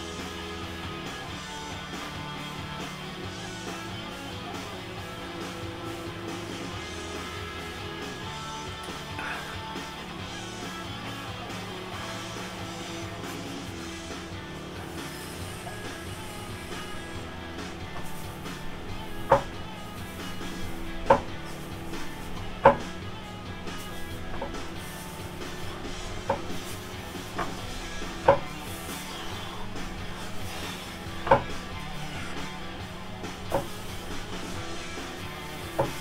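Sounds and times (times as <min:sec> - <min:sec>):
background music: 0:00.0 - 0:36.0
pull-up bar knocking: 0:19.0 - 0:21.4, 0:22.4 - 0:23.0, 0:23.8 - 0:24.8, 0:26.1 - 0:28.8, 0:30.5 - 0:32.4, 0:33.4 - 0:34.4, 0:35.7 - 0:36.0.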